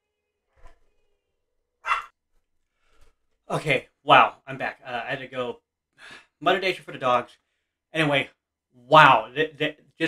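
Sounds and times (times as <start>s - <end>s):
person sharp breath: 6.0s - 6.3s.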